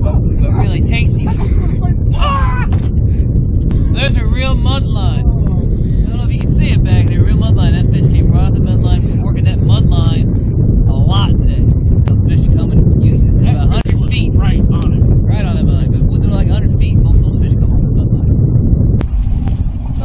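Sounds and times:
people talking indistinctly: 0.0 - 18.3
wind buffeting microphone: 0.0 - 20.0.

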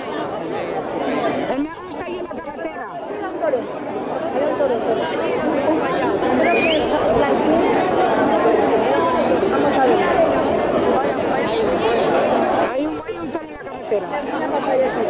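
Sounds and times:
crowd chattering and calling out: 0.0 - 15.0
rising shout or whistle: 6.4 - 6.9.

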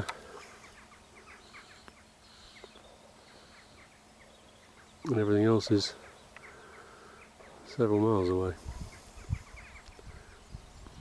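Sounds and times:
bird chirps: 0.0 - 11.0.

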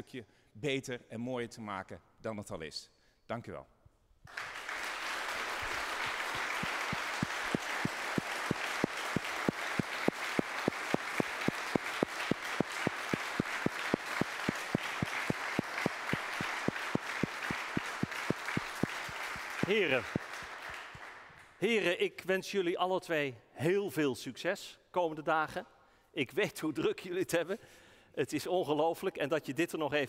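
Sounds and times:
audience applause: 4.3 - 21.6
clapping in unison: 4.3 - 21.6.

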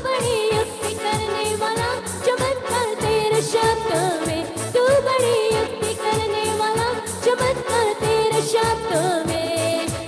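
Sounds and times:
instrumental backing: 0.0 - 10.0
woman singing worship song: 0.0 - 10.0.

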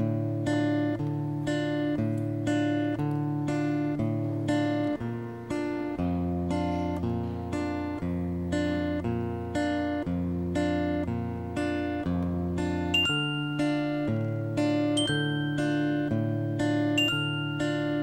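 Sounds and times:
strummed acoustic guitar chords: 0.0 - 18.0
glockenspiel note: 12.9 - 18.0.

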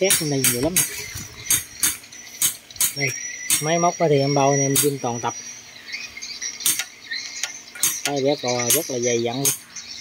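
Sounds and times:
faint high-pitched chirping: 0.0 - 10.0.

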